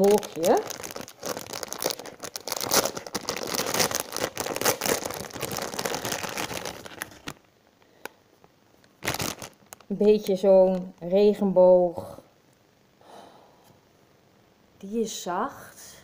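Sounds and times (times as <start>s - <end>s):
plastic bag crinkling: 0.0s - 7.5s, 8.8s - 11.0s.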